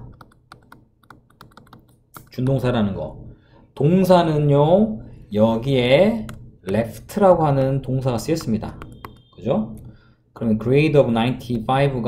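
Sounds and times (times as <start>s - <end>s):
stylus tapping on tablet screen: 0.0s - 2.6s, 6.2s - 9.9s.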